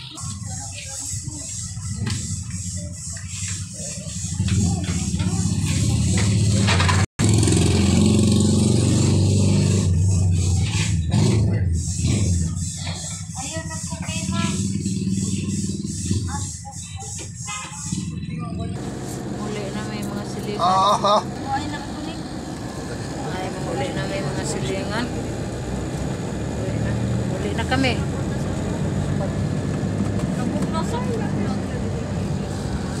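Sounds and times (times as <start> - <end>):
van engine humming: 18.1 - 33.0.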